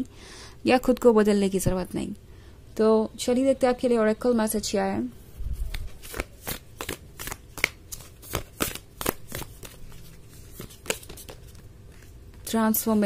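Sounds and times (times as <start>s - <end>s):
cards being shuffled by hand: 5.5s - 13.0s.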